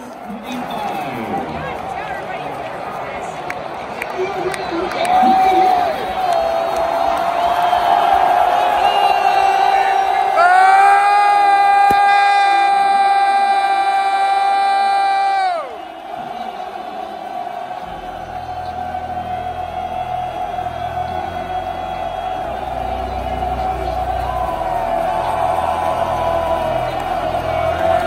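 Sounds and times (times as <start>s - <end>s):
stadium crowd cheering: 0.0s - 28.0s.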